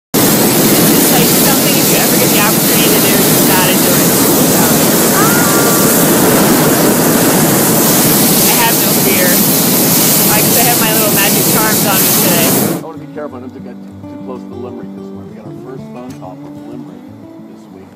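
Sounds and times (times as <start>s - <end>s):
propane burner roaring: 0.1s - 12.9s
faint voices: 0.9s - 7.3s, 10.2s - 17.9s.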